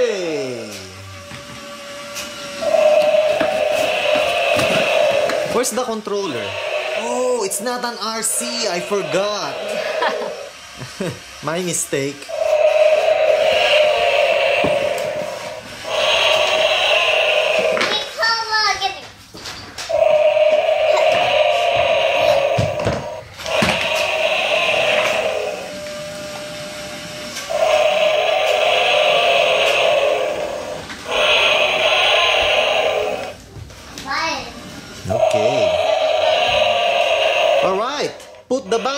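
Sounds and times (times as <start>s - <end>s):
toy dinosaur electronic roar: 2.4s - 11.0s, 12.2s - 18.4s, 19.9s - 26.0s, 27.4s - 33.4s, 35.0s - 38.9s.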